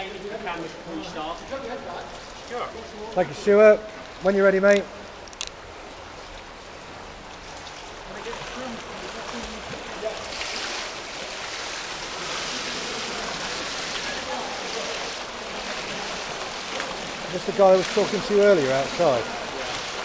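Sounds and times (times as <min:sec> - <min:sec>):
swimmer splashing in pool: 0:08.1 - 0:20.0.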